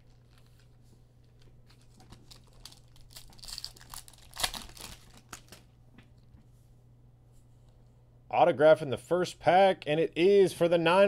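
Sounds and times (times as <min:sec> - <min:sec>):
foil wrapper tearing and crinkling: 0:01.4 - 0:05.7.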